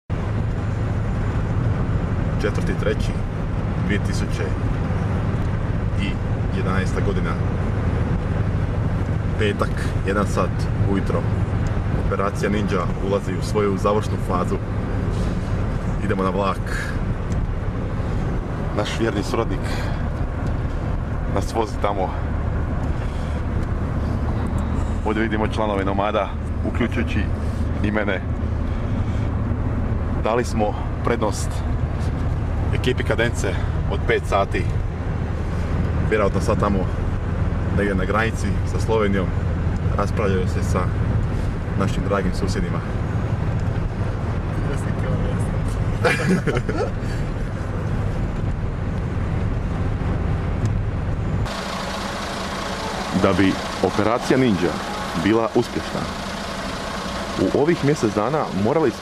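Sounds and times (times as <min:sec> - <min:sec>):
car engine and road noise: 0:00.0 - 0:59.0
outdoor street noise: 0:00.0 - 0:59.0.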